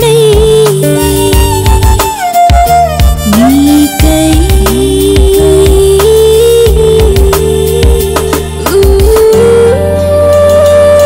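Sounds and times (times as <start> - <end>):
drum beat: 0.0 - 9.4
held melody line: 0.0 - 11.0
steady bass: 0.0 - 11.0.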